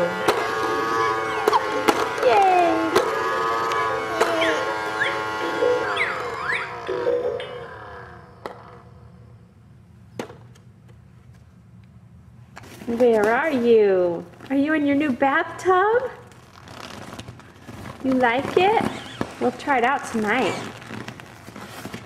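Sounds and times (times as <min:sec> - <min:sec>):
electronic toy tune: 0:03.0 - 0:08.2
baby babbling: 0:03.7 - 0:05.8.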